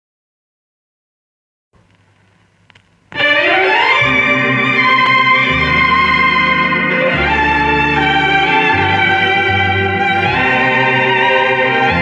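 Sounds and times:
record click: 1.8s - 3.2s
vinyl surface noise: 1.8s - 5.4s
instrumental music from record: 1.8s - 12.0s.

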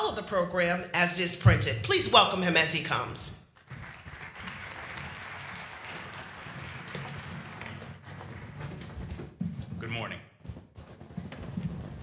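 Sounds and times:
audience applauding: 3.6s - 9.1s.

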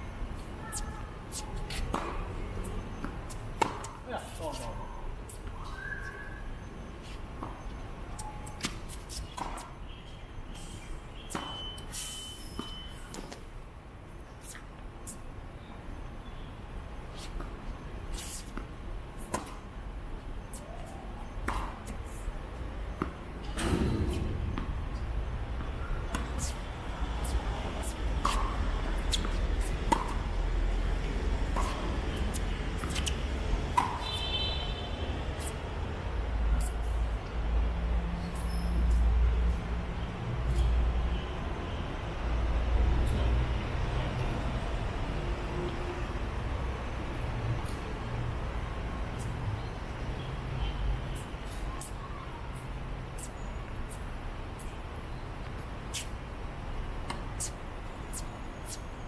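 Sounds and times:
tennis balls struck and bouncing: 1.4s - 2.3s, 3.0s - 4.7s, 7.4s - 9.7s, 11.3s - 11.7s, 18.4s - 19.6s, 20.5s - 22.0s, 23.0s - 26.6s, 27.2s - 30.4s, 31.0s - 34.2s.

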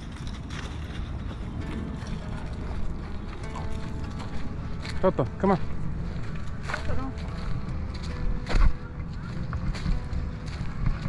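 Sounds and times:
footsteps crunching dry leaves: 0.0s - 11.0s
steady low rumble: 0.0s - 11.0s.

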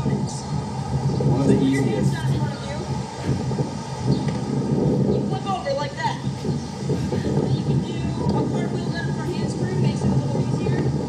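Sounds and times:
indistinct voices: 0.0s - 3.9s
steady low rumbling: 0.0s - 11.0s.

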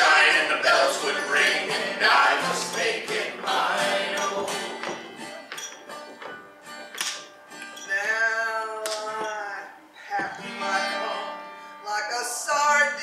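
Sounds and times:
voices singing together: 0.0s - 5.2s
acoustic guitar: 0.0s - 13.0s.

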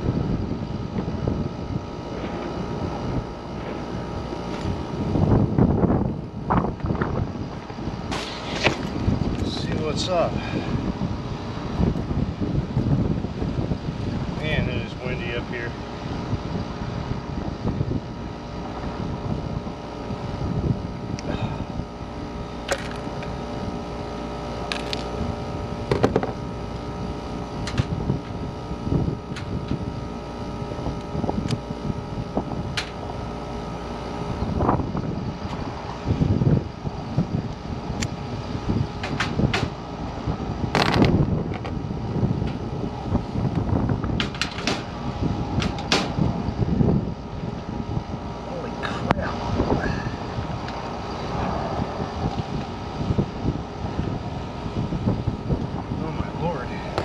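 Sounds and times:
hvac mechanical hum: 0.0s - 57.0s
wind buffeting microphone: 0.0s - 57.0s.

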